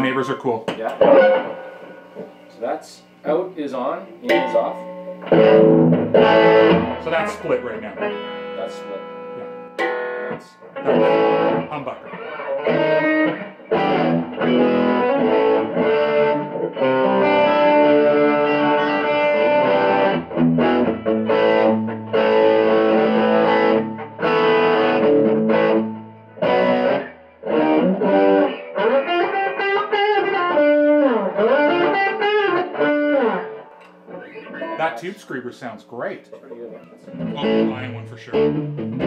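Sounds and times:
overdriven electric guitar: 0.7 - 2.5, 4.2 - 34.8, 36.7 - 39.0.

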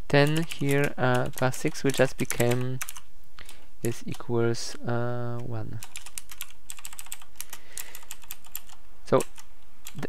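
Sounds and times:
typing on computer keyboard: 0.2 - 3.0, 5.8 - 10.0.

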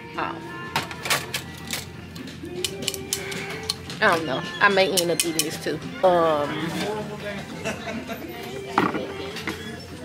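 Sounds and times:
store background music: 0.0 - 10.0.

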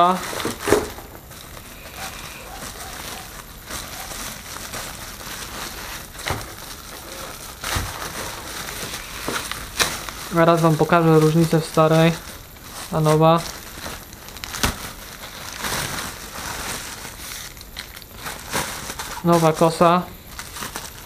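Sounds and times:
bubble wrap crinkling: 0.0 - 21.0.

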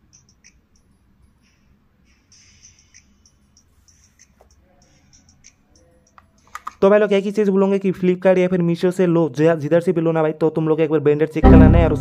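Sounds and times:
man speaking: 6.8 - 12.0.

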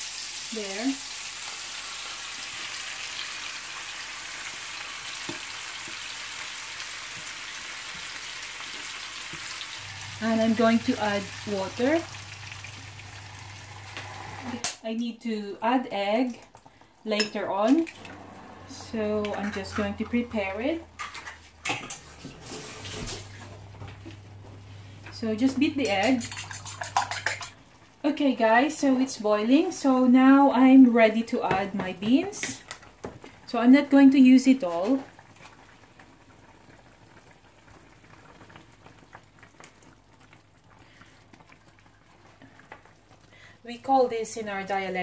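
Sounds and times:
broth bubbling in a pan: 0.0 - 14.4, 32.6 - 45.0.

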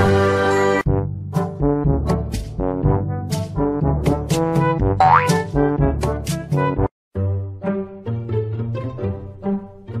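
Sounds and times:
comic brass music: 1.4 - 6.0
cartoon boing sound effect: 5.0 - 5.4.

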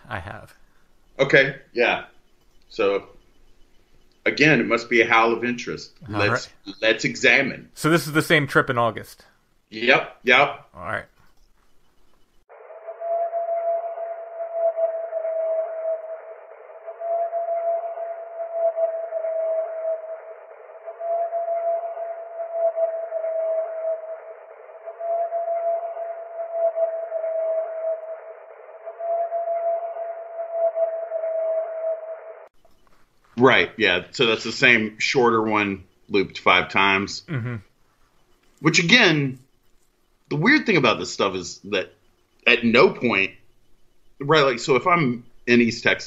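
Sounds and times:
constant hiss: 0.0 - 12.5, 32.6 - 46.0
long steady howl: 12.5 - 32.5.

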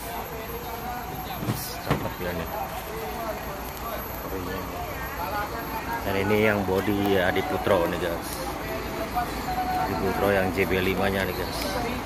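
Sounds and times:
low engine rumble: 0.0 - 12.0
people talking: 0.0 - 12.0.

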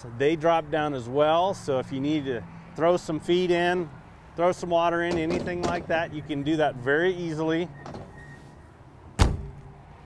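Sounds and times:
trailer window latching shut: 5.1 - 6.0, 7.8 - 8.3, 9.2 - 9.7.

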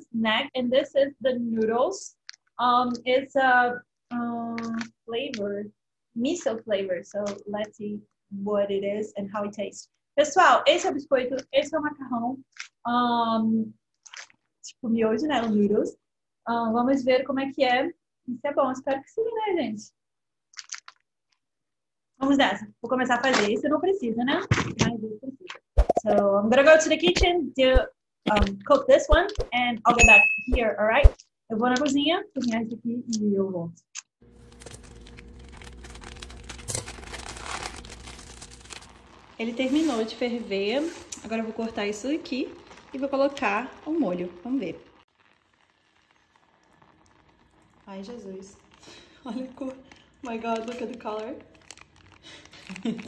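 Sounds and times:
foil sachet being squeezed: 12.6 - 12.8, 14.0 - 14.5, 20.5 - 21.0, 34.0 - 53.0
plastic packaging crinkling: 14.0 - 14.5, 20.6 - 21.0, 34.3 - 53.0.

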